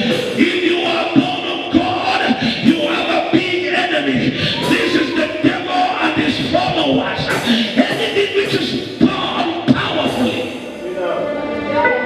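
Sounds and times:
background music: 0.0 - 12.0
man shouting through microphone: 0.4 - 10.5.

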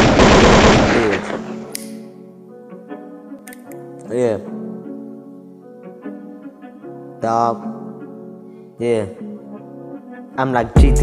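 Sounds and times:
machine-gun fire: 0.0 - 1.5
hip-hop beat: 10.4 - 11.0.

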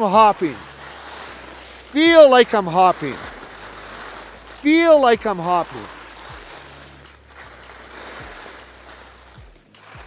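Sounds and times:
skis hissing on snow: 0.0 - 10.0.

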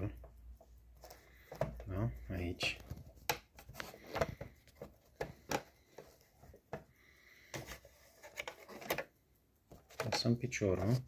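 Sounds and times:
light clicks and taps: 0.0 - 11.0.

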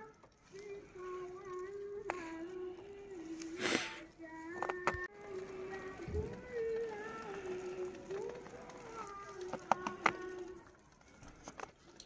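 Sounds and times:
voice singing long held notes: 0.0 - 11.2.

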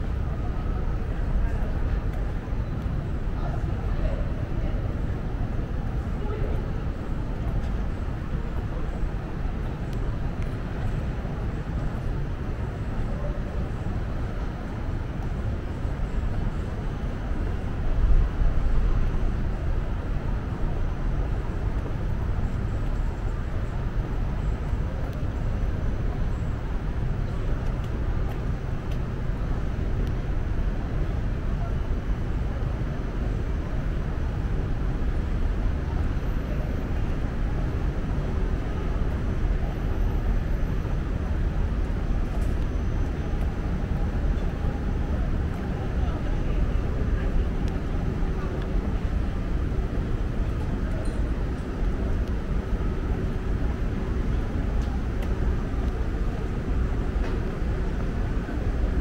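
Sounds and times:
distant traffic hum: 0.0 - 59.0
faint voices: 0.0 - 59.0.

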